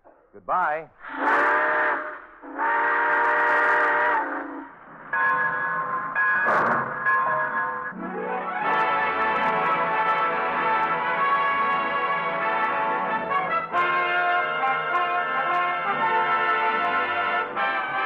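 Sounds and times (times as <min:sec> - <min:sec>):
steam locomotive chime whistle: 0:01.1 - 0:18.0
orchestral music: 0:07.9 - 0:18.0.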